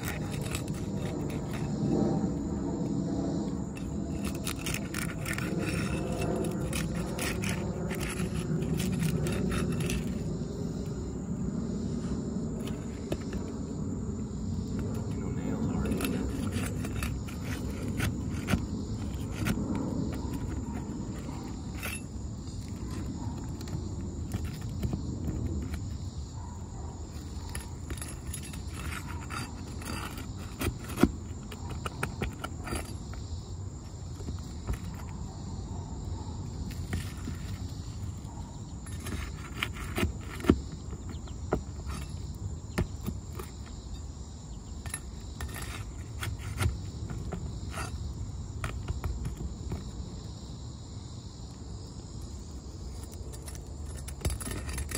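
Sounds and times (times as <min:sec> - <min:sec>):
pry bar scraping shingles: 0:00.0 - 0:11.1, 0:11.9 - 0:35.4, 0:36.4 - 0:50.3, 0:52.4 - 0:54.9.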